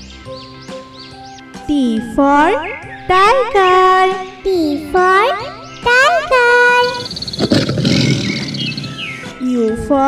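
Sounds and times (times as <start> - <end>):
tiger roaring: 6.8 - 9.3.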